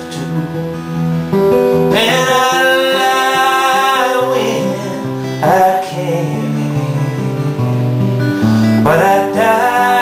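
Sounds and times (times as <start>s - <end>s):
acoustic guitars strumming: 0.0s - 10.0s.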